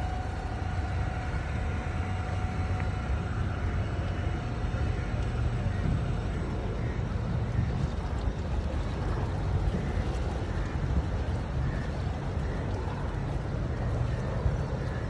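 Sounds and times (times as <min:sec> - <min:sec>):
boat engine rumble: 0:00.0 - 0:15.0
faint steady whine: 0:00.0 - 0:15.0.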